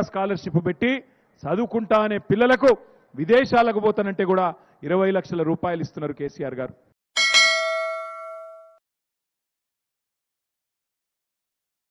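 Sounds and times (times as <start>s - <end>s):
ringing chime: 7.2s - 8.8s.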